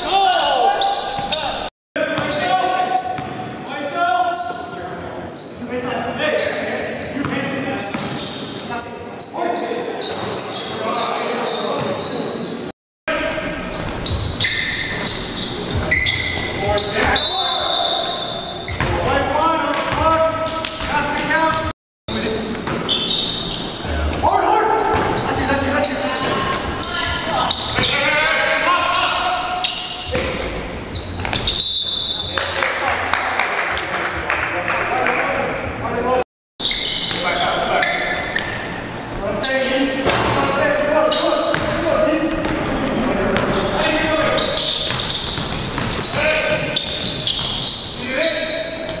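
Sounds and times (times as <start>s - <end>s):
sneakers squeaking: 0.0s - 32.6s, 36.6s - 49.0s
basketball bouncing on gym floor: 31.2s - 31.6s, 41.5s - 43.7s, 44.3s - 46.2s.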